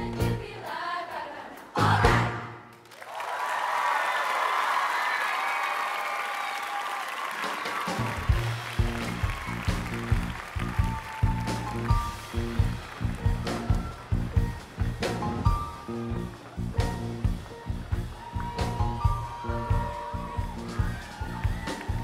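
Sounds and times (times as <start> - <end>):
audience applauding and cheering: 2.0 - 22.0.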